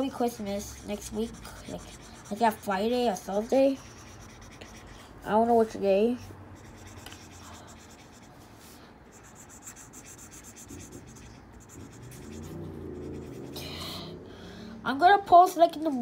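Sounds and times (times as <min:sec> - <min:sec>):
marker scribbling on paper: 0:00.0 - 0:13.6.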